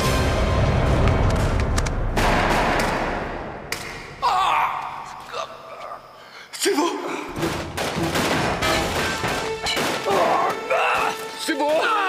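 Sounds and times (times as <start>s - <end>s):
sharp crack: 1.7s - 4.2s
gunshot with echo: 2.2s - 4.0s.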